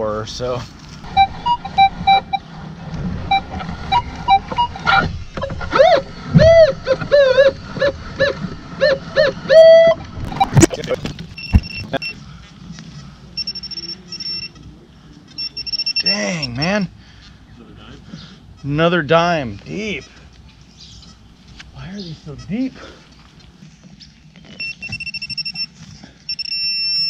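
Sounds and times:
metal detector beeps: 1.1s - 2.4s, 3.3s - 5.6s, 9.6s - 12.2s, 13.4s - 14.6s, 15.3s - 16.6s, 24.6s - 27.0s
swooping voice-like calls: 3.9s - 10.7s.

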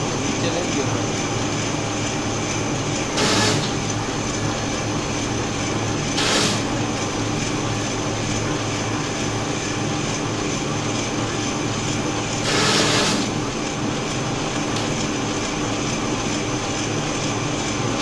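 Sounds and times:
paper shredder motor hum: 0.0s - 18.0s
paper being shredded: 3.2s - 3.8s, 6.2s - 6.7s, 12.4s - 13.4s.

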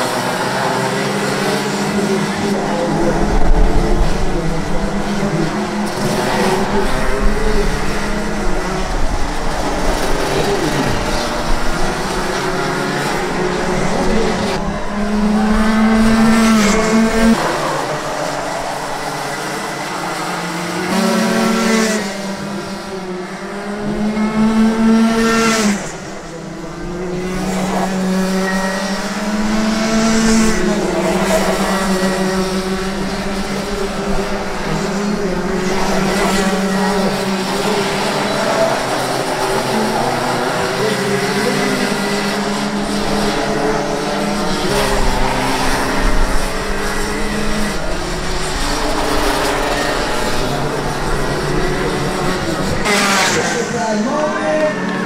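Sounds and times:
kart engines racing: 0.0s - 55.0s.

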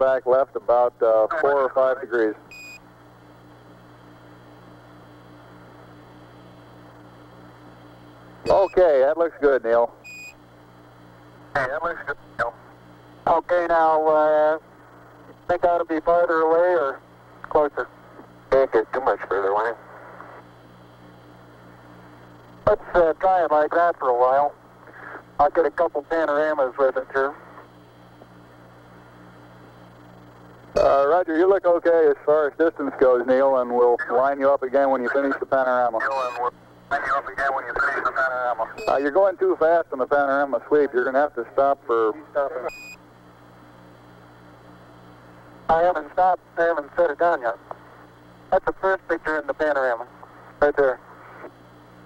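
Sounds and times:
radio hum and hiss: 0.0s - 52.0s
short high radio beep: 8.5s - 8.9s.

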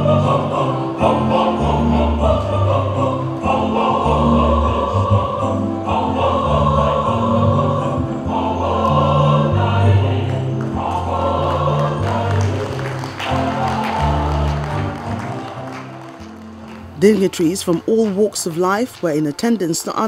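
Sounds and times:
choir singing in harmony: 0.0s - 16.6s.

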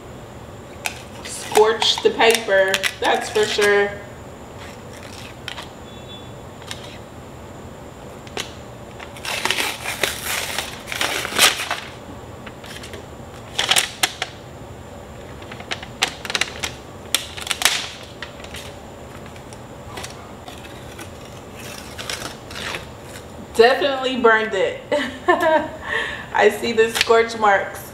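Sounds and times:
paper crinkling and crackling: 4.6s - 5.7s, 9.0s - 12.0s, 15.2s - 23.3s.

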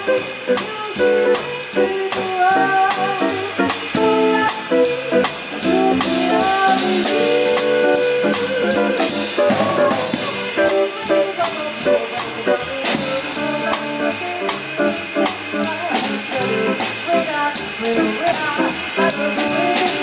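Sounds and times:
drum kit hits: 0.0s - 20.0s
jazz band playing: 0.0s - 20.0s
woman singing: 0.0s - 20.0s.

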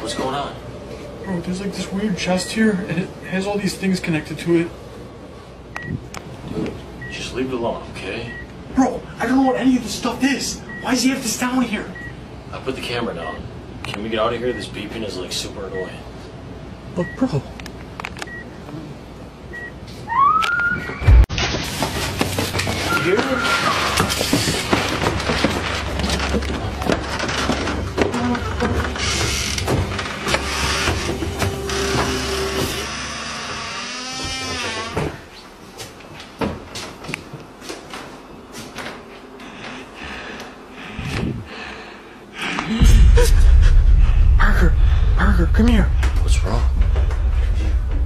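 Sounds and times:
bumps and footsteps: 21.1s - 32.8s, 42.8s - 48.0s.

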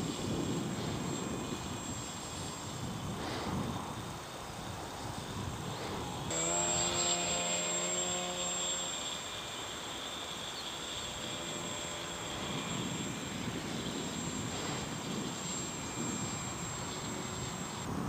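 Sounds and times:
high steady whine: 0.0s - 18.0s
model plane motor drone: 0.0s - 18.0s.

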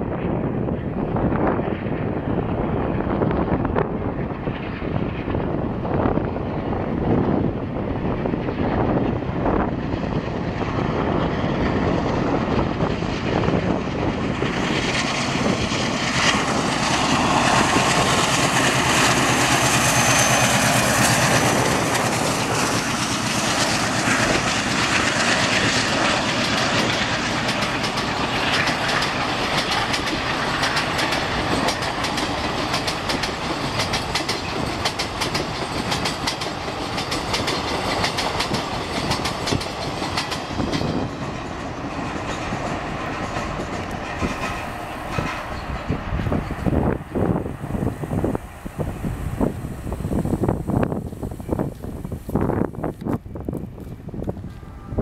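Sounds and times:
diesel locomotive engine working: 0.0s - 55.0s
train wheels clattering: 11.3s - 54.7s.

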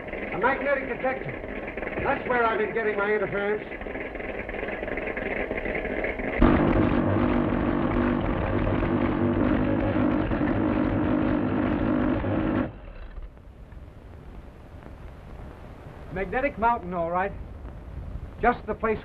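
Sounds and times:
loud electrical buzzing hum: 0.0s - 16.7s
quieter steady hum: 0.0s - 19.0s.

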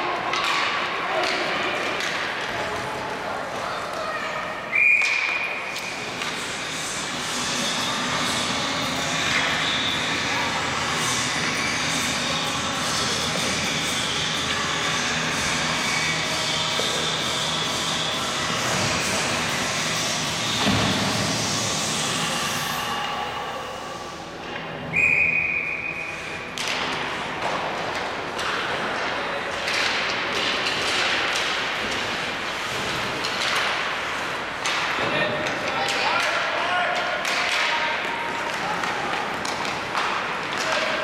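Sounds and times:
players and spectators voices: 0.0s - 41.0s
referee's whistle: 24.9s - 26.2s
sticks and puck knocking: 37.0s - 41.0s.

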